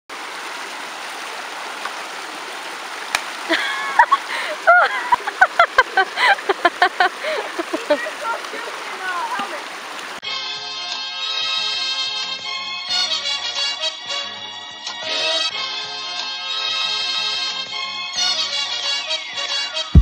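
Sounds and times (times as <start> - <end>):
creek water running over rocks: 0.1 - 10.5
people calling out: 7.2 - 9.6.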